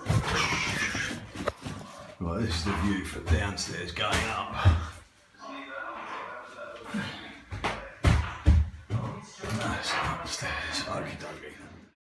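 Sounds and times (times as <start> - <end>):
footsteps going down stairs: 0.0 - 5.1, 7.4 - 10.5.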